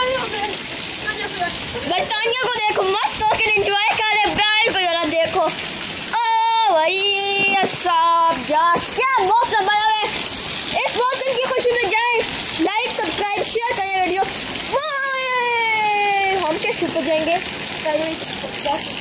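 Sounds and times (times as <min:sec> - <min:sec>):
child talking: 0:00.0 - 0:18.9
rain hissing: 0:00.0 - 0:19.0
running water: 0:00.0 - 0:19.0.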